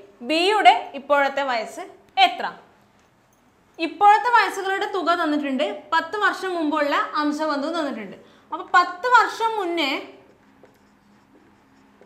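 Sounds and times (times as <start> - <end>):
marker pen writing on whiteboard: 8.6 - 12.0.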